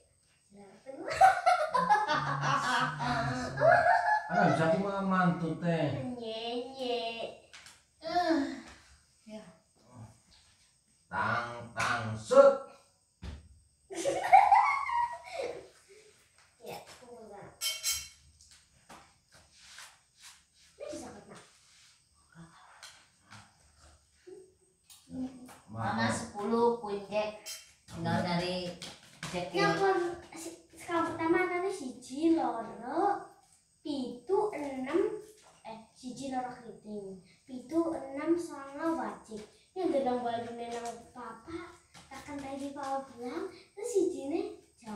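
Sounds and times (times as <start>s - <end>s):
child's voice: 0.5s - 1.2s, 6.0s - 8.7s, 16.6s - 17.6s, 20.8s - 21.5s, 25.1s - 27.4s, 29.6s - 33.3s, 33.9s - 44.9s
people talking: 0.6s - 7.3s, 20.8s - 21.4s, 25.1s - 33.2s, 33.9s - 44.9s
people laughing: 1.1s - 4.8s, 13.9s - 15.7s.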